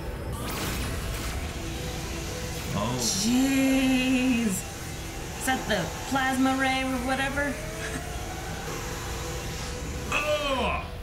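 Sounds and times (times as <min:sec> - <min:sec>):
steady rushing noise: 0:00.8 - 0:11.0
long strained yells: 0:10.0 - 0:11.0.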